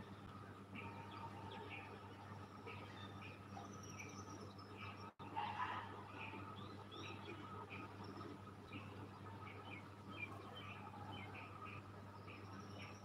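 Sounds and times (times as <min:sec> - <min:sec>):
faint small bird chirps: 0:00.0 - 0:05.2, 0:06.1 - 0:13.0.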